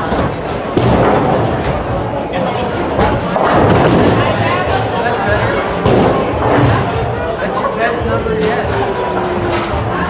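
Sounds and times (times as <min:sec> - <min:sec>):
bowling alley din: 0:00.0 - 0:10.0
bowling ball thud and roll: 0:02.9 - 0:04.7.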